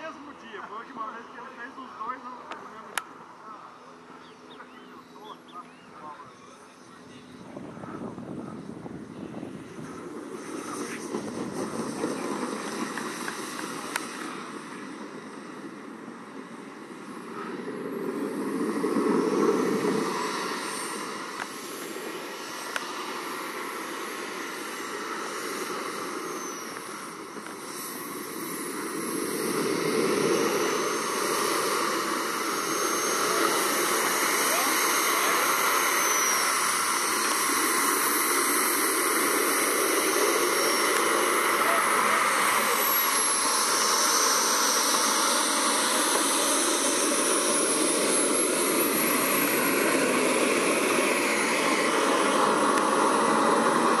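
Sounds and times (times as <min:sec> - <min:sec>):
model jet turbine hissing and whining: 0:06.0 - 0:54.0.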